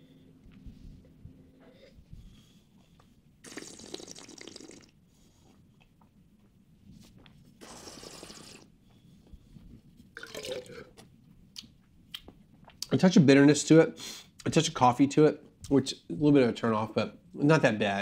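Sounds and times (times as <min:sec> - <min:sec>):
mouth sound: 0:03.4 - 0:04.9, 0:07.6 - 0:08.7
wine slurping through lips: 0:03.4 - 0:04.9, 0:07.6 - 0:08.7.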